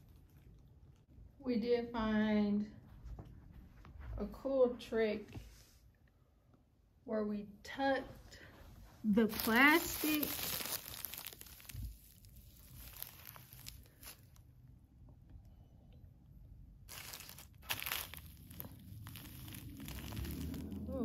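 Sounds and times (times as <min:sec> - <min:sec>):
plastic sheeting crinkling: 0:09.1 - 0:14.4, 0:16.9 - 0:21.0.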